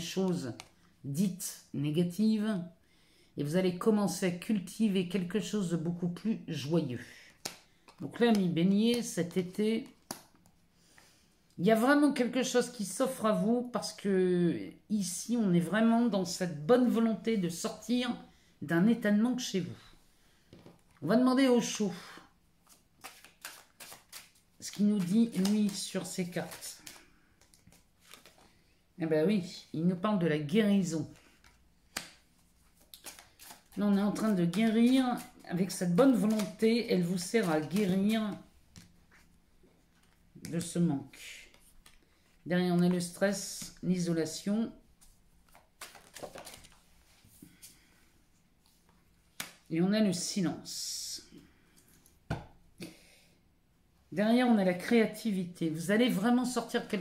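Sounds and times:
cards being shuffled: 0.1 - 0.9, 7.3 - 10.6, 22.6 - 28.6, 30.9 - 40.8, 41.4 - 43.9, 45.0 - 47.8.

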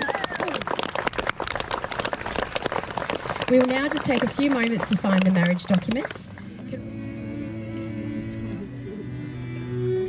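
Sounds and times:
people applauding: 0.0 - 6.5.

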